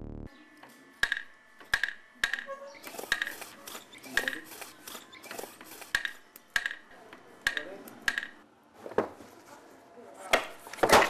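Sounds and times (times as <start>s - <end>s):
bamboo poles knocking: 1.0s - 4.7s, 5.5s - 8.4s.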